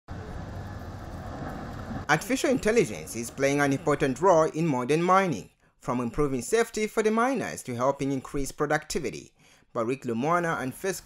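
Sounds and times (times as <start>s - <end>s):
haul truck diesel engine: 0.1s - 4.2s
machinery drone: 0.1s - 4.3s.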